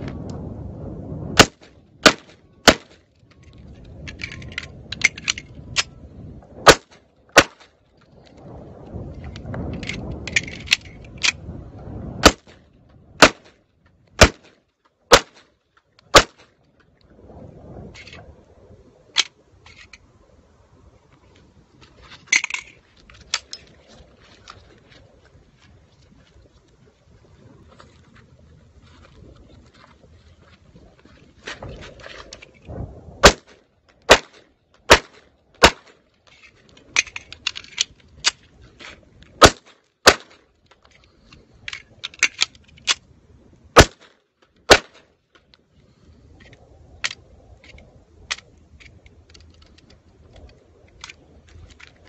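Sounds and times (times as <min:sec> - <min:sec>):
pistol shots: 0:01.4 - 0:03.0, 0:06.6 - 0:07.7, 0:13.2 - 0:13.6, 0:14.2 - 0:14.5, 0:15.1 - 0:15.4, 0:16.1 - 0:16.4, 0:33.2 - 0:36.0, 0:39.4 - 0:40.4, 0:43.8 - 0:44.1, 0:44.7 - 0:45.0.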